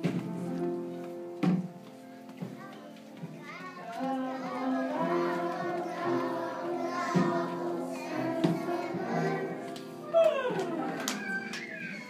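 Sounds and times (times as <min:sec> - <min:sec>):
held music accompaniment: 0:00.0 - 0:12.0
children chattering: 0:02.4 - 0:12.0
children singing: 0:03.6 - 0:12.0.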